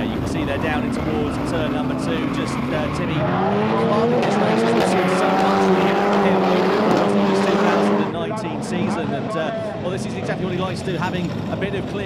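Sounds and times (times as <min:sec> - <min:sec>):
race car engines at high revs: 0:00.0 - 0:12.0.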